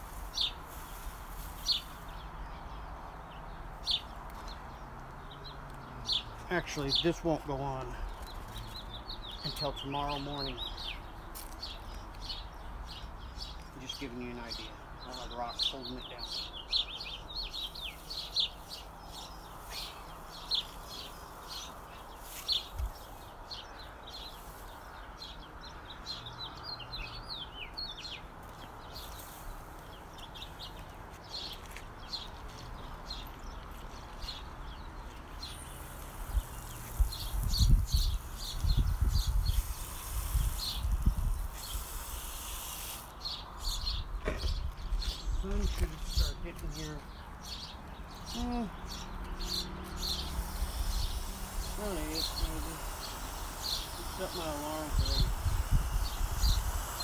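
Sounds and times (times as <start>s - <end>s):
water spraying from a hose: 0.0s - 2.2s, 35.4s - 43.4s, 49.6s - 57.0s
small birds chirping: 0.0s - 57.0s.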